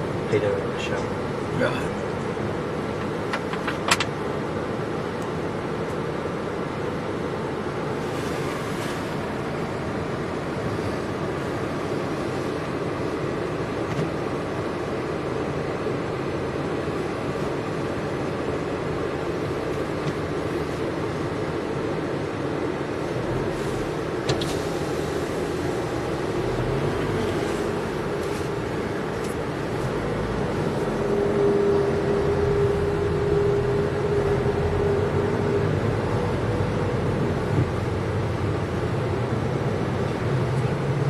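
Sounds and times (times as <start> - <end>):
car engine and road noise: 0.0 - 41.0.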